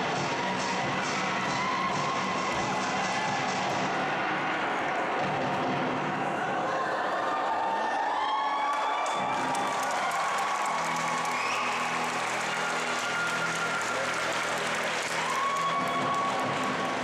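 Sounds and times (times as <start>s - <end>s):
audience applauding and cheering: 0.0s - 17.0s
background music held notes: 9.3s - 17.0s.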